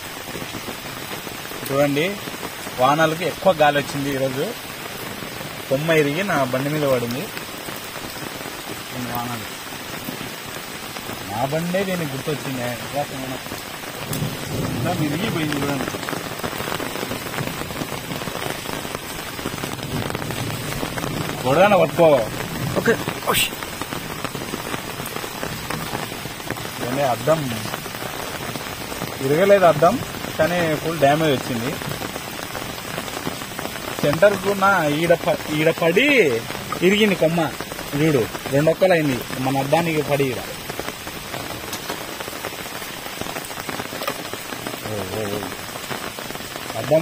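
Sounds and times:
rain pattering: 0:00.0 - 0:47.0.

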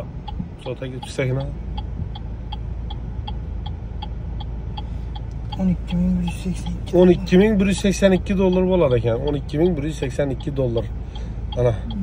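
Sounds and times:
low car cabin hum: 0:00.0 - 0:12.0
turn signal clicking: 0:00.0 - 0:12.0.

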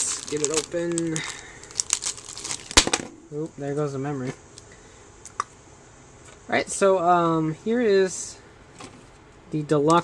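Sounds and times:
plastic bag crinkling: 0:00.0 - 0:03.1.

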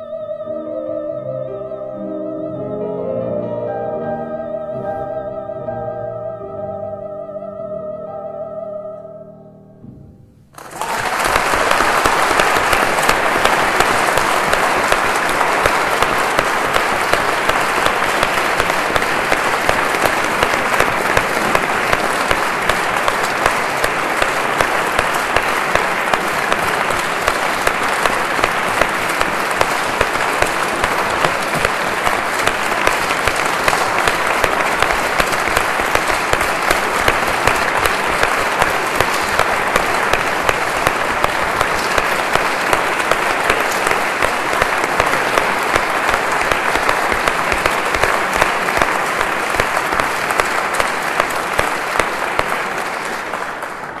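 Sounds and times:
audience applauding: 0:10.5 - 0:54.0.

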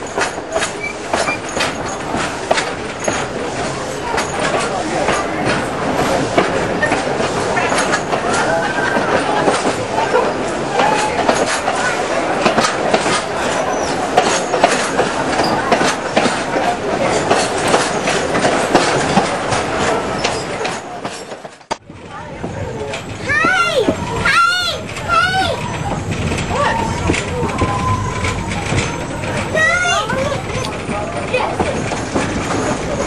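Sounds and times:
train running rumble: 0:00.0 - 0:33.0
wheels clicking over rail joints: 0:00.0 - 0:33.0.

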